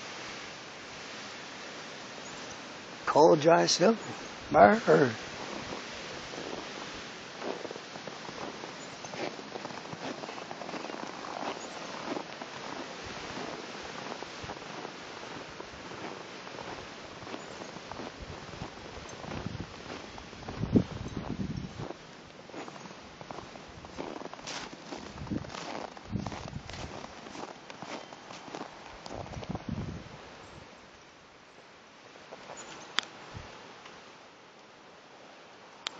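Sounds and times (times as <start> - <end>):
footsteps crunching on snow: 3.4 - 30.4, 32.2 - 32.8
wind on microphone: 4.0 - 22.0, 24.9 - 27.5, 29.0 - 30.4, 33.2 - 33.6.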